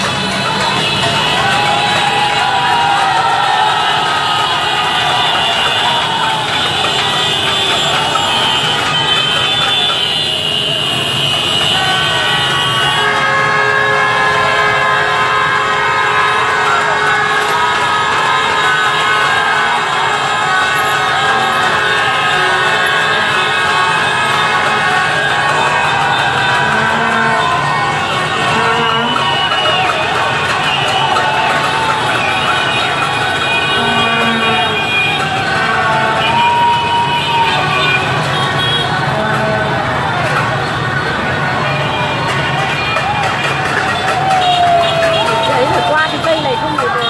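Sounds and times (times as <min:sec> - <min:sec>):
crowd shouting: 0:00.0 - 0:47.0
motorbike engines: 0:00.0 - 0:47.0
motorbike horns: 0:00.0 - 0:47.0.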